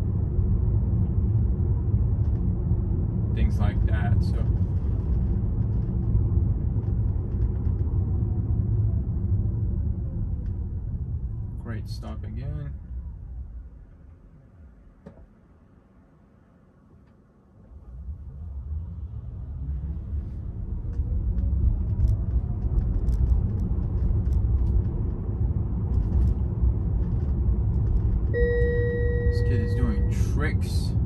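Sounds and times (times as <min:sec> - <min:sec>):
tyre and road rumble: 0:17.9 - 0:31.0
short electronic tone: 0:28.4 - 0:30.4.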